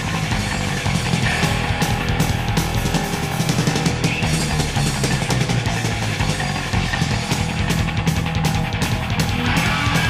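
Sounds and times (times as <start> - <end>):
thrash metal band playing: 0.0 - 10.0.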